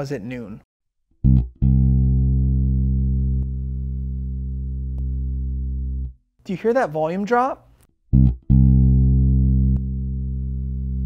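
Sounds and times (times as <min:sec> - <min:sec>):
electric bass note: 0:01.2 - 0:06.2, 0:08.2 - 0:11.0
effects pedal switch click: 0:04.9 - 0:05.2.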